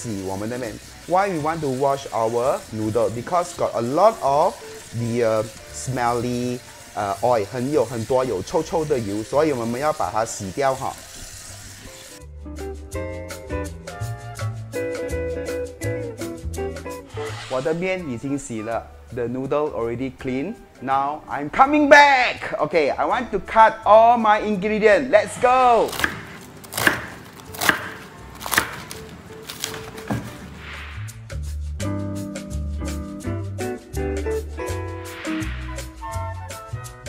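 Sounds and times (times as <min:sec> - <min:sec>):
tap water running into bowl: 0:00.0 - 0:12.2
music with plucked notes: 0:12.1 - 0:17.2, 0:31.8 - 0:37.0
knife chopping cabbage on wood: 0:25.9 - 0:30.6.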